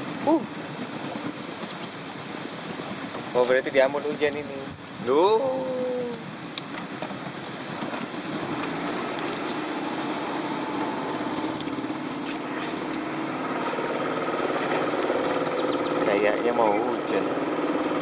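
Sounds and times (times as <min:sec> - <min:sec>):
water rushing past hull: 0:00.0 - 0:18.0
small boat motor running: 0:06.8 - 0:18.0.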